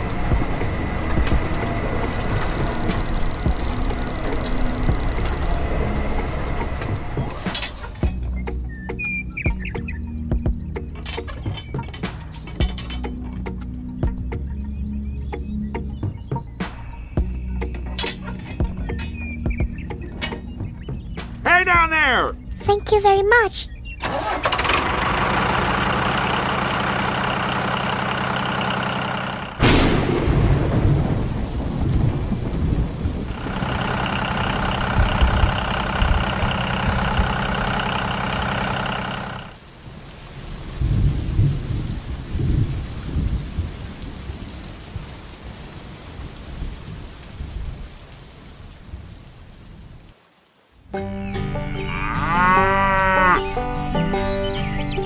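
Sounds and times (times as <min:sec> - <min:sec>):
upbeat music: 0:02.2 - 0:05.6
steady rain: 0:24.8 - 0:51.0
low rolling thunder: 0:29.6 - 0:33.4
thunderclap: 0:29.6 - 0:33.4.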